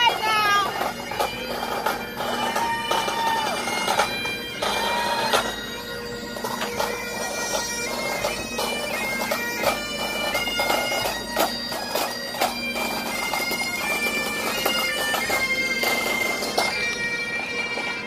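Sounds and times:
bagpipes playing a tune: 0:00.0 - 0:18.0.

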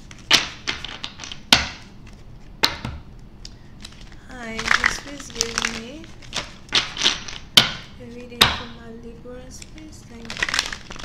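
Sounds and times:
cards tapping and snapping: 0:03.8 - 0:08.6.

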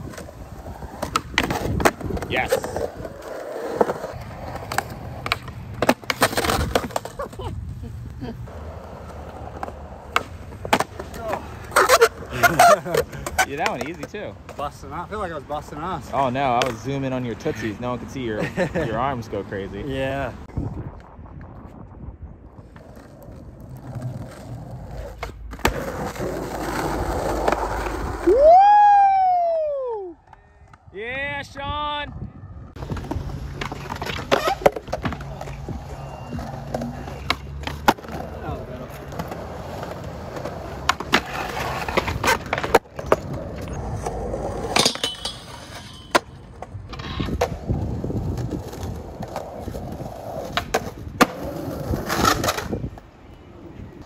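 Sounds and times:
skateboard wheels rolling on concrete: 0:00.0 - 0:54.0
skateboard clacks: 0:03.7 - 0:07.4.

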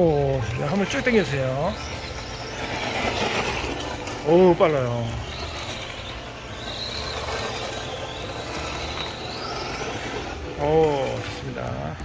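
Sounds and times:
thin high motor whine: 0:00.0 - 0:12.0
tyres rushing on loose gravel: 0:00.0 - 0:12.0.

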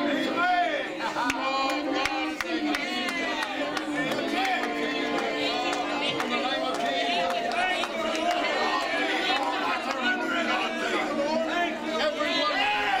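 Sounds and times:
people praying aloud: 0:00.0 - 0:13.0.

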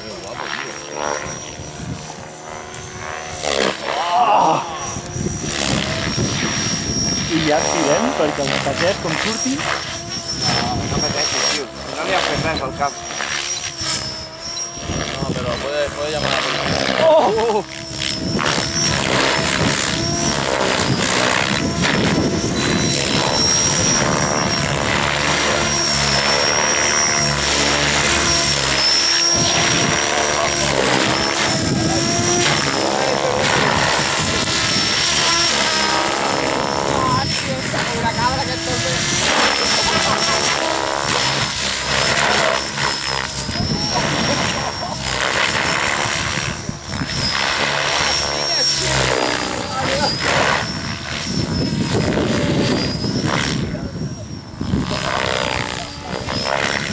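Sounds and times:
model helicopter rotor whine: 0:00.0 - 0:56.9.

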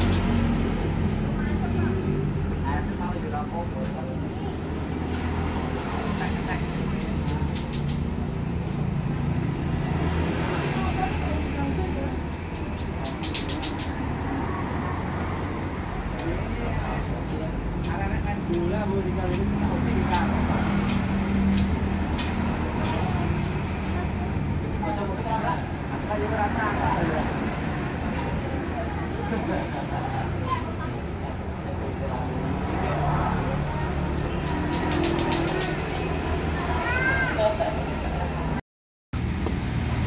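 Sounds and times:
indistinct voices talking: 0:00.0 - 0:38.6
sharp clicks: 0:12.8 - 0:14.0.

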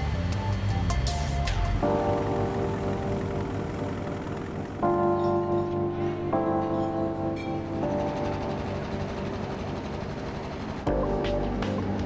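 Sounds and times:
faint music: 0:00.0 - 0:12.0
loud music with deep rumble: 0:00.0 - 0:12.0.

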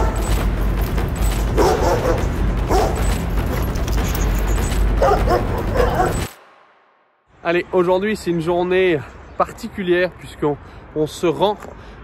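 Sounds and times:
dog barking: 0:00.0 - 0:00.3, 0:01.6 - 0:03.0, 0:05.0 - 0:06.3.

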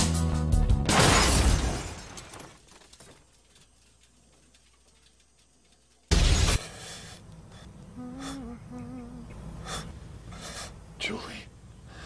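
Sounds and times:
music with drums and guitar: 0:00.0 - 0:00.9
car crash: 0:00.8 - 0:03.3
glass shattering: 0:00.9 - 0:02.9.

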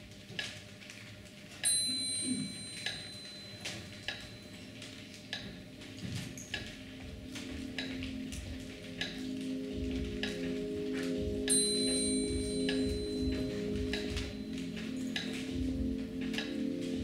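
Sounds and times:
low steady music tone: 0:00.0 - 0:17.0
ringing chime: 0:01.6 - 0:05.2, 0:05.9 - 0:17.0
clock ticking: 0:05.3 - 0:17.0.

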